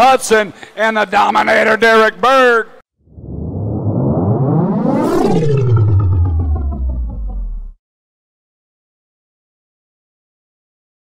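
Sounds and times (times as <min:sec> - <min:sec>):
whoosh rising in pitch: 0:03.0 - 0:07.8
low rumble: 0:03.1 - 0:07.8.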